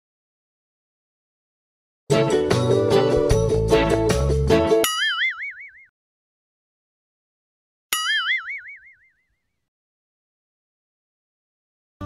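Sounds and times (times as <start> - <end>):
cartoon boing: 4.8 - 5.9, 8.0 - 9.3.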